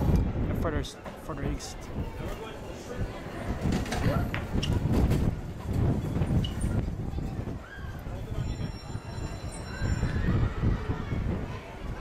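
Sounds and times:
indistinct voices of passers-by: 0:00.0 - 0:12.0.

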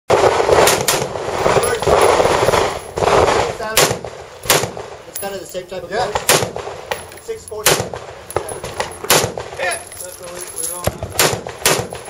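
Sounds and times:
gunshots: 0:00.1 - 0:05.1, 0:06.0 - 0:09.9, 0:10.8 - 0:12.0.

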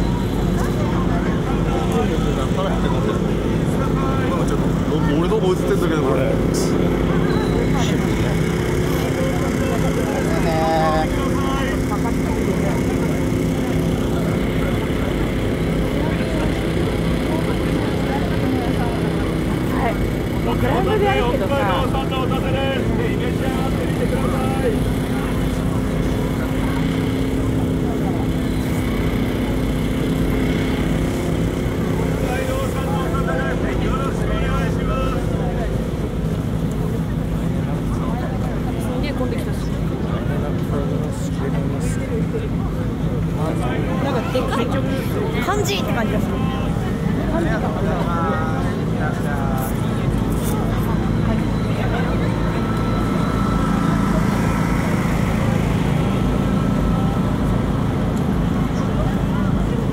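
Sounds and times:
crowd chatting: 0:00.0 - 0:59.9
low mechanical hum: 0:00.0 - 0:59.9.

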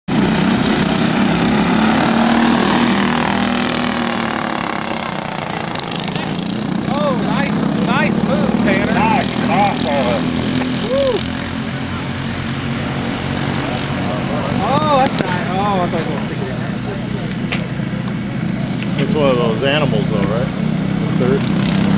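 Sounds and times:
racing kart engines buzzing: 0:00.1 - 0:21.9
person shouting: 0:10.8 - 0:11.2.

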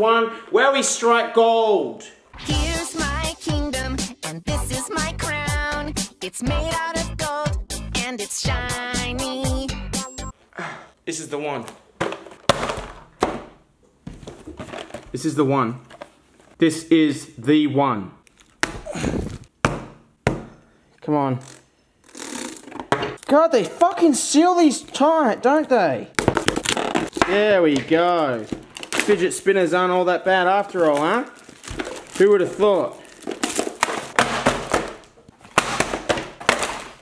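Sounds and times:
items clattering onto wooden table: 0:12.0 - 0:13.5
plastic wrap crinkling: 0:18.2 - 0:19.5, 0:24.8 - 0:37.0.

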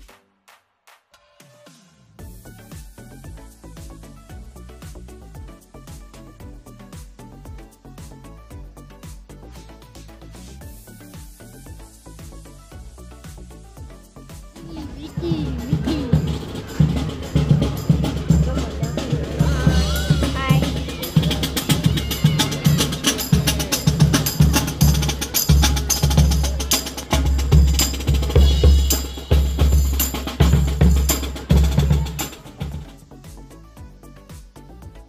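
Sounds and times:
bass drums and snare drums: 0:02.0 - 0:35.0
sousaphones and brass: 0:14.6 - 0:32.9.

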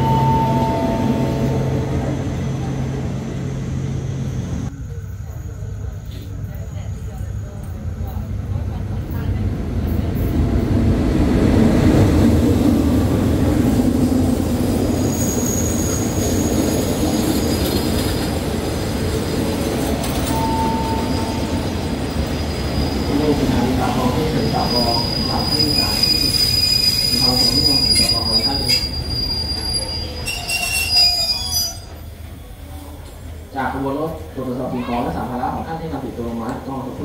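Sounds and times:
train wheels rumbling on rail: 0:05.6 - 0:34.4
high metallic wheel squeals: 0:15.0 - 0:16.8, 0:24.0 - 0:32.0.

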